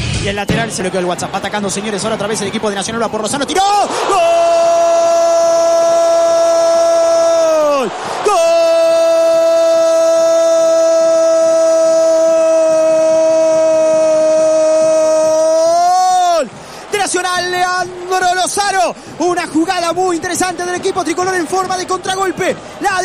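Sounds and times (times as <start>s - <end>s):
commentator shouting goal: 1.8s - 23.0s.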